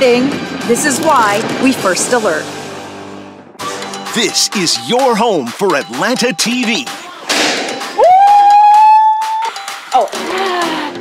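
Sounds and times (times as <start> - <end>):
thump of board being struck: 7.3 - 7.8
person shouting woo: 8.0 - 10.7.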